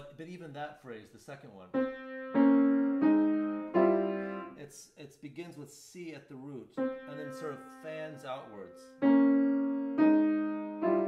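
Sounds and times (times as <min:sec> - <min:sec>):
piano chords ringing: 0:01.8 - 0:04.6, 0:06.8 - 0:11.0.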